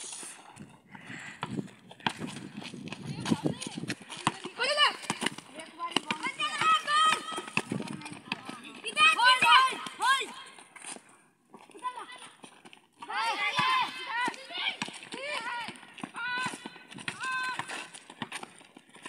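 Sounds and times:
running feet on concrete: 0:00.0 - 0:19.0
basketball bouncing: 0:01.4 - 0:10.2, 0:13.3 - 0:18.6
boys shouting: 0:04.4 - 0:10.6, 0:13.1 - 0:17.8.

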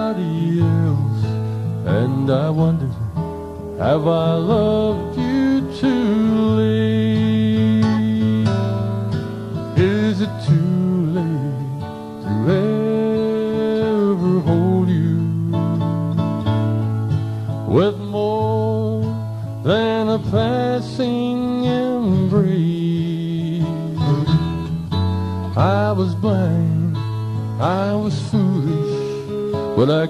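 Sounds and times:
acoustic guitar: 0:00.0 - 0:30.0
man singing country song: 0:00.0 - 0:30.0.

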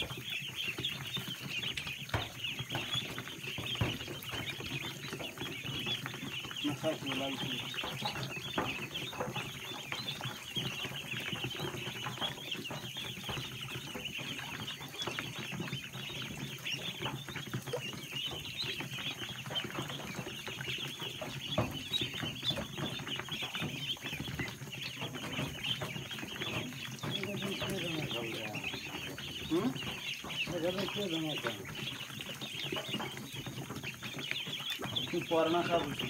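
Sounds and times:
ducklings peeping: 0:00.0 - 0:36.0.

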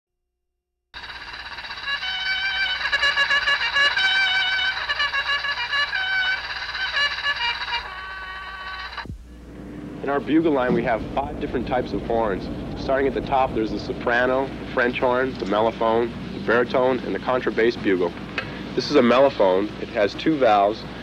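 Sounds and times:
brass music: 0:01.8 - 0:15.3.

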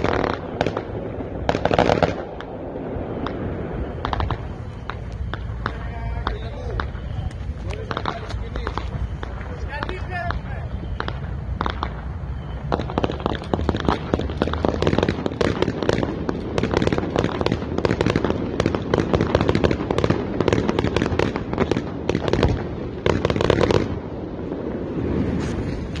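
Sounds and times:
fireworks crackling and banging: 0:00.0 - 0:26.0.

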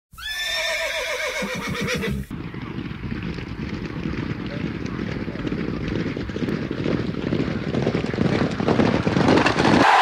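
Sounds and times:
horse whinnying: 0:00.1 - 0:02.3.

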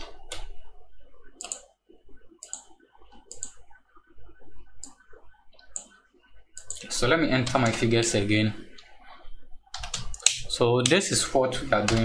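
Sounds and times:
mouse clicking: 0:01.3 - 0:01.7, 0:02.4 - 0:03.8, 0:04.7 - 0:07.9, 0:08.7 - 0:11.0
keyboard keys clicking: 0:01.4 - 0:01.6, 0:09.7 - 0:11.0.

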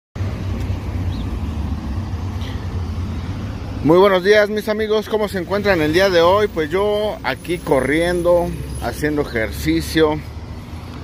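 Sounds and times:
road traffic rumble: 0:00.2 - 0:11.0.

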